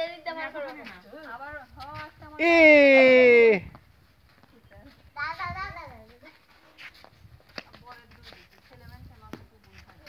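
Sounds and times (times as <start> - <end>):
child's high voice: 5.2 - 6.4.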